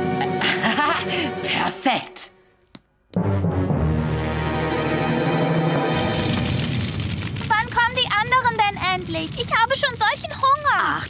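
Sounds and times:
cartoon fire rushing and crackling: 5.6 - 11.0.

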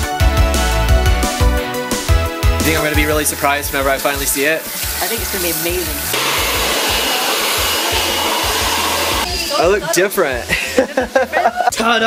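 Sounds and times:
hair dryer blowing: 6.1 - 9.3.

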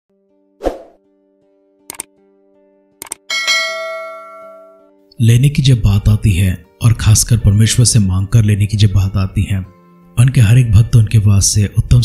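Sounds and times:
bright bell chime: 3.3 - 4.9.

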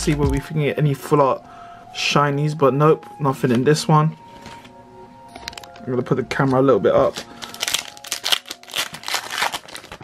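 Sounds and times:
foil wrapper tearing and crinkling: 7.0 - 10.0.

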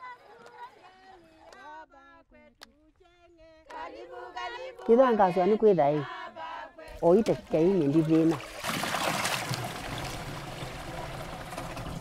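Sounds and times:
water pouring into a jerrycan: 7.4 - 12.0.

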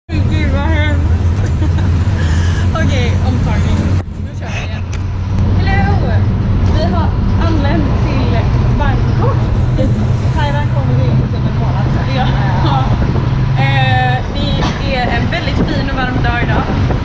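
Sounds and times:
bus engine droning: 0.0 - 17.0
women laughing and chatting: 0.1 - 5.0, 5.6 - 16.7.

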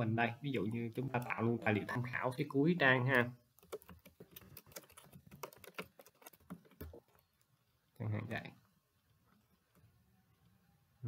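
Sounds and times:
computer keyboard typing: 0.9 - 2.1, 2.9 - 7.5.

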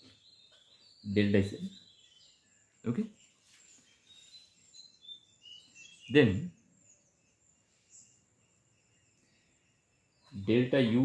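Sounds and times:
faint high bird chirps: 0.0 - 11.0.

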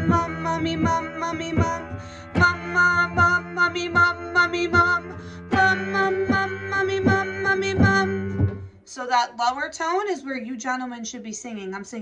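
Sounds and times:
piano repeated low notes: 0.0 - 8.7.

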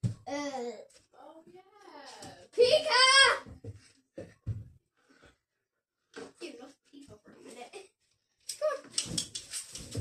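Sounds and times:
footsteps thudding on carpet: 3.5 - 4.8.

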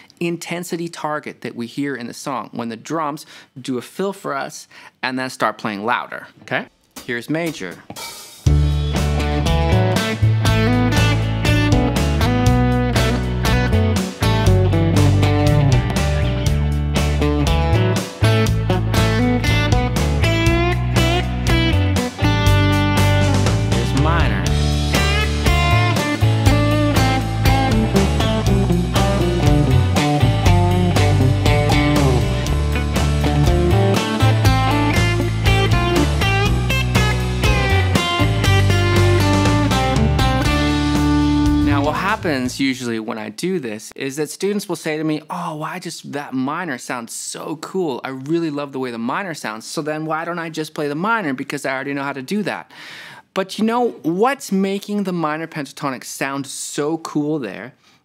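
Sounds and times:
bass and drums backing track: 7.0 - 42.6
electric guitar licks with bends: 8.5 - 42.6.

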